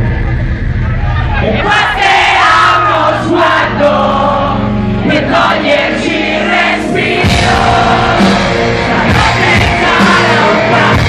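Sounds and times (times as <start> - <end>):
crowd singing and shouting: 0.0 - 11.0
live rock band playing: 0.0 - 11.0.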